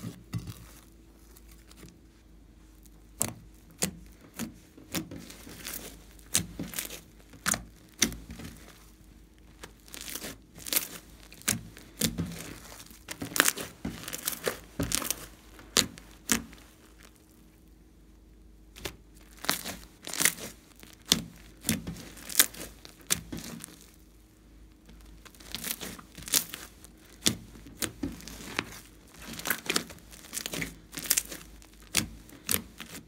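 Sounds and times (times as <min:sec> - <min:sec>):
crackly slime squishes: 0:00.0 - 0:33.0.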